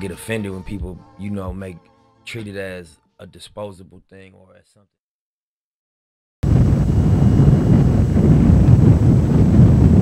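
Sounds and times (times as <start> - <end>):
wind buffeting microphone: 6.4 - 10.0.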